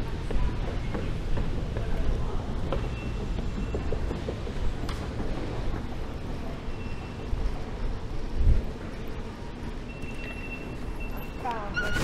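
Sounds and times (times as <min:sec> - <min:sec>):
station concourse ambience: 0:00.0 - 0:12.0
thin high steady beep: 0:09.8 - 0:12.0.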